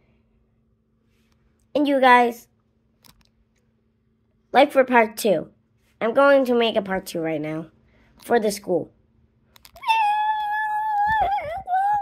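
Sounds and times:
high-pitched drawn-out cry: 9.8 - 12.0.

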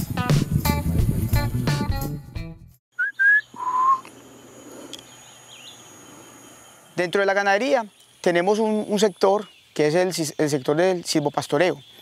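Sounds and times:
background music: 0.0 - 2.8
whistled notes: 3.0 - 4.1.

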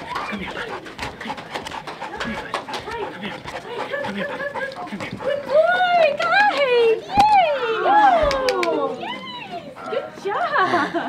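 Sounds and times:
dog paws knocking and scuffing: 0.0 - 7.6
faint voices: 0.0 - 11.0.

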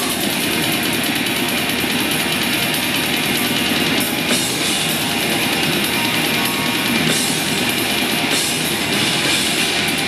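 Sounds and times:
distorted guitars: 0.0 - 10.0
drums: 0.0 - 10.0.

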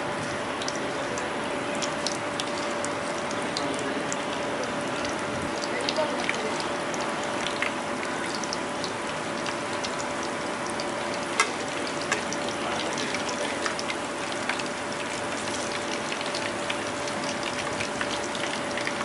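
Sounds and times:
prawns deep-frying in oil: 0.0 - 19.0.

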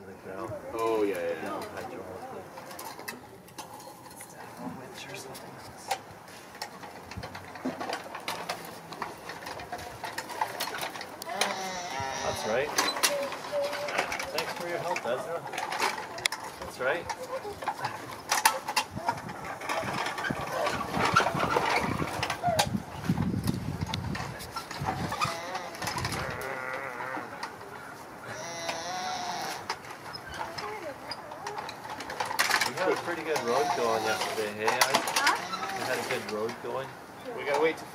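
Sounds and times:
metal toy trucks clanking in dirt: 0.8 - 26.7, 29.6 - 37.8
wavering bleat-like calls: 11.3 - 12.8, 25.0 - 27.4, 28.2 - 29.7, 33.4 - 34.4, 35.2 - 35.9.

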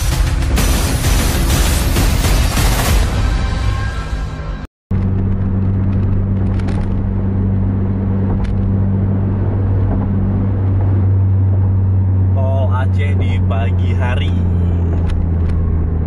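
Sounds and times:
car engine drone: 0.0 - 16.0
road and tyre noise: 0.0 - 16.0.

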